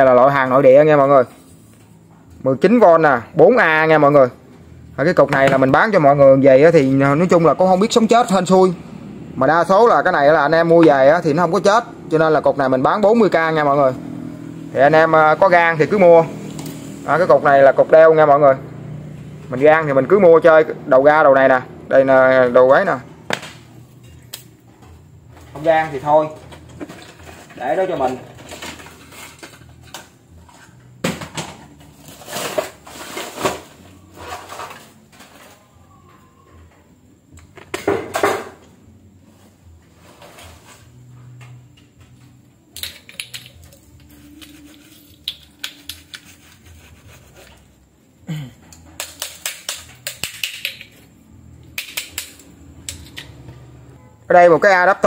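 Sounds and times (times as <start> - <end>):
clatter of plastic and metal items: 26.2 - 35.7.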